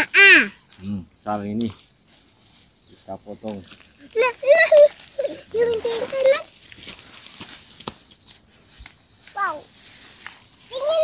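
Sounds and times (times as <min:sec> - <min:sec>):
leaves and plastic rustling: 0:00.6 - 0:11.0
leaf stalks snapping: 0:05.6 - 0:09.4.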